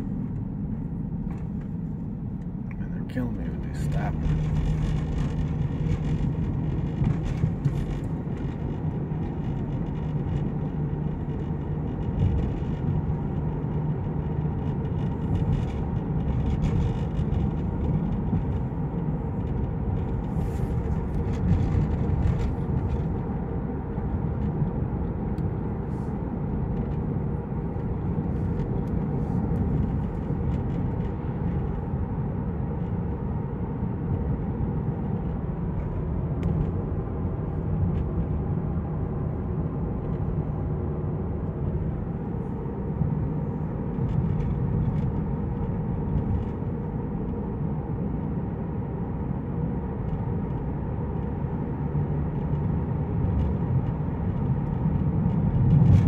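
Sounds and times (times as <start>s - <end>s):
car engine hum: 0.0s - 56.0s
tyre and road rumble: 0.0s - 56.0s.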